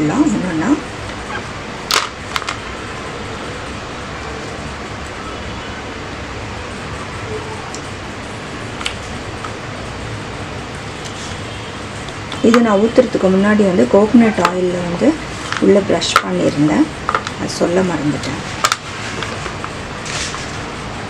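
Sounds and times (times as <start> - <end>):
room noise hiss: 0.0 - 21.0.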